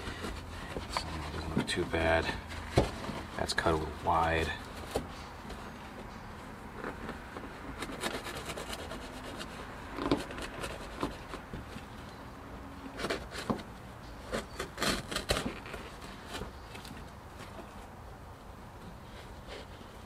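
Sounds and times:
carpet scraping and knocking: 0:00.0 - 0:05.6.

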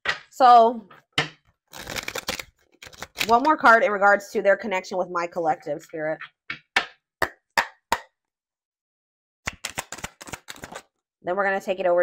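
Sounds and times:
cards being shuffled: 0:01.7 - 0:03.6, 0:09.5 - 0:10.9.

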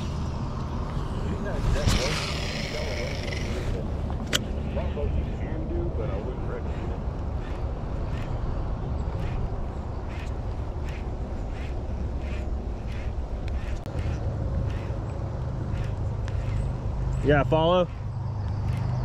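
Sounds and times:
fishing reel whirring: 0:01.8 - 0:03.8, 0:06.6 - 0:19.0.

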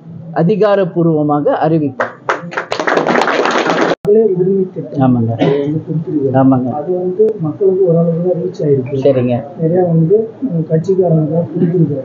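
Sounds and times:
people clapping: 0:02.0 - 0:04.0.

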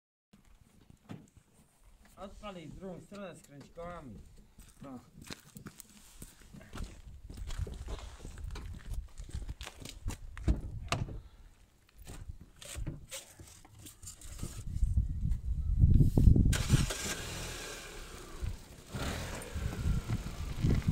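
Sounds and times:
car engine starting and running: 0:16.5 - 0:20.9.

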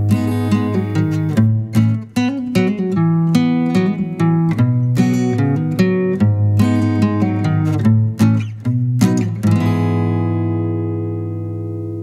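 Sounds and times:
strummed guitar chord: 0:00.0 - 0:12.0.

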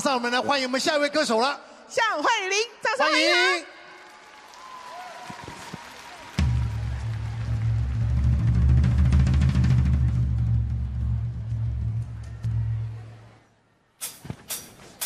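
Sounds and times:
audience applause: 0:04.0 - 0:09.2
song with loud bass and drums: 0:07.6 - 0:12.0.

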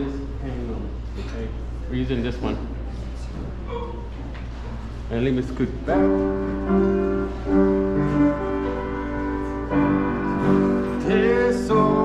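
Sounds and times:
held hymn chords: 0:05.9 - 0:12.0
person singing: 0:10.8 - 0:12.0.

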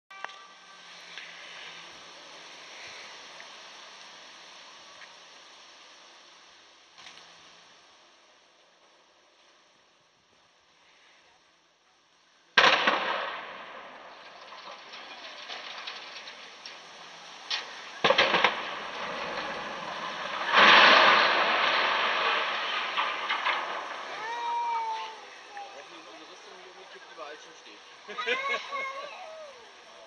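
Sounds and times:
explosion bang with rumble: 0:12.6 - 0:16.9, 0:18.0 - 0:24.2
sharp explosive crack: 0:12.6 - 0:26.4
chimney collapse noise: 0:12.6 - 0:27.3.

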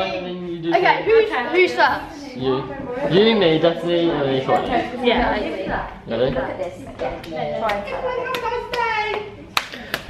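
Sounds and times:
hands slapping together: 0:09.5 - 0:10.0.

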